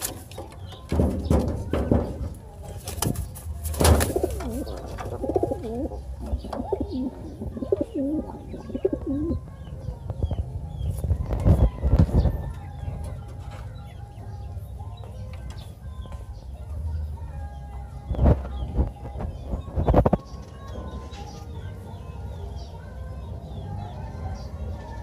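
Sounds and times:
pigeons cooing: 0.0s - 10.4s.

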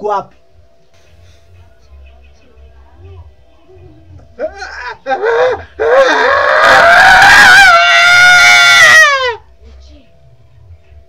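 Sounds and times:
man screaming: 5.1s - 9.4s.

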